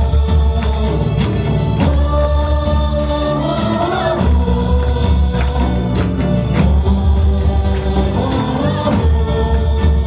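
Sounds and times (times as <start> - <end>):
band with heavy bass: 0.0 - 10.0
voices singing along: 0.0 - 10.0.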